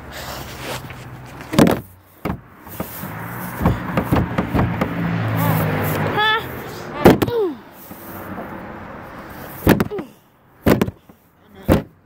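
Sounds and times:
knocks: 0:01.5 - 0:02.9, 0:03.6 - 0:05.1, 0:09.6 - 0:10.0, 0:10.6 - 0:11.1, 0:11.7 - 0:12.0
loud thump: 0:01.5 - 0:02.9, 0:03.6 - 0:05.0, 0:07.0 - 0:07.4, 0:09.6 - 0:10.0, 0:10.6 - 0:11.0, 0:11.7 - 0:12.0.

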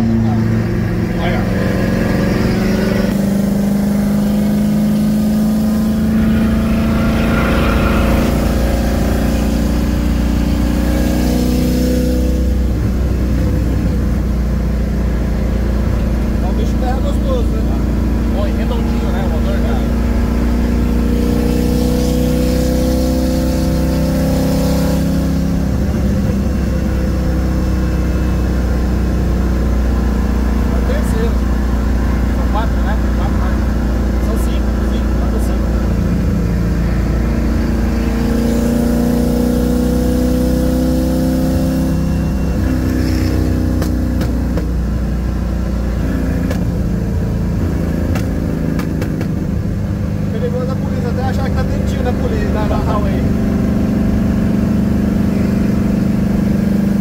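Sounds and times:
car engine drone: 0:00.0 - 0:57.0
road noise: 0:00.0 - 0:57.0.

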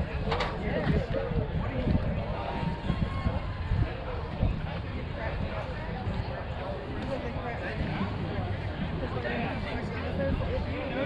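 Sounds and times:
players talking and calling out: 0:00.0 - 0:11.0.

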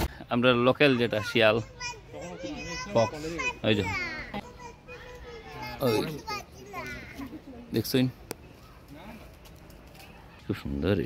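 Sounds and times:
children calling and shouting: 0:00.0 - 0:11.0.

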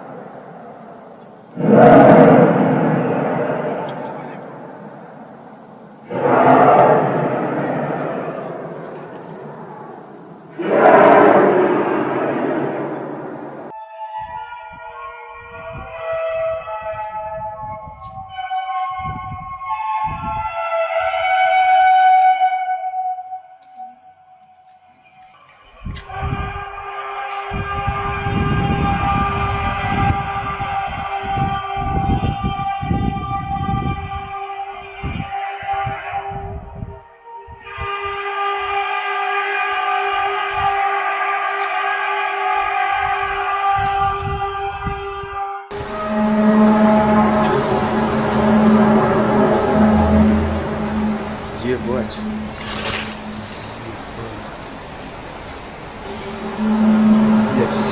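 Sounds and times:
wind buffeting microphone: 0:00.0 - 0:21.3, 0:25.6 - 0:38.8, 0:42.6 - 0:57.9
horn-like drone: 0:00.0 - 0:57.9.

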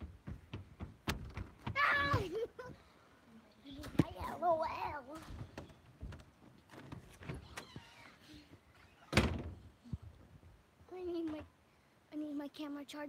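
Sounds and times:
scattered knocks: 0:00.0 - 0:02.2.

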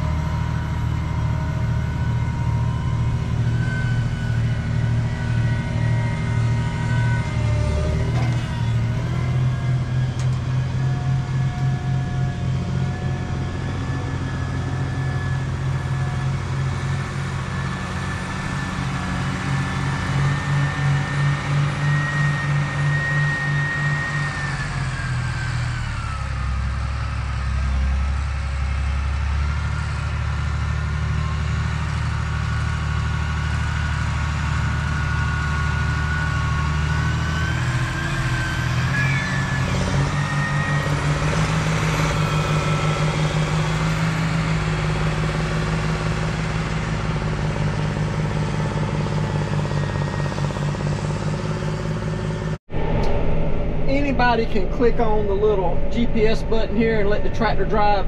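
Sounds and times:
thin whine: 0:00.0 - 0:26.8, 0:37.3 - 0:58.0
tractor diesel engine under load: 0:00.0 - 0:58.0.

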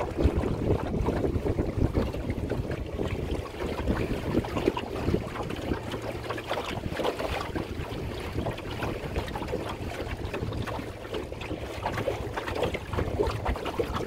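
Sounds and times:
water splashing against hull: 0:00.0 - 0:14.0
wind buffeting microphone: 0:00.0 - 0:14.0.

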